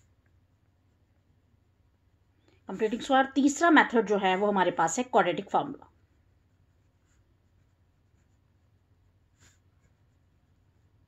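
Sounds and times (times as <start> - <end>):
marker pen writing on paper: 6.1 - 11.0.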